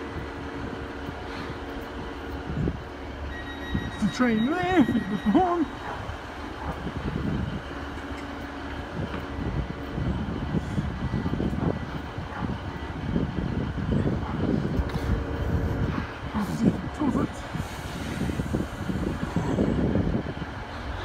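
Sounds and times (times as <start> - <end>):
train engines and wheels rumbling: 0.0 - 21.0.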